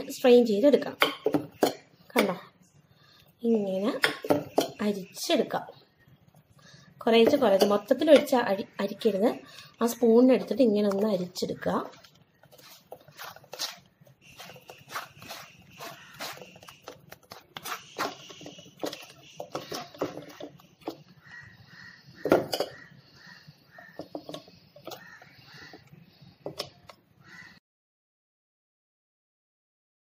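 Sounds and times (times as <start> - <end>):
spoon scraping mesh strainer: 11.9 - 20.5.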